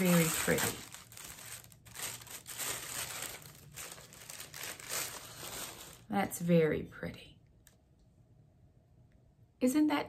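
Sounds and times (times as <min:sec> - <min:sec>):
paper crinkling and rustling: 0:00.0 - 0:06.1.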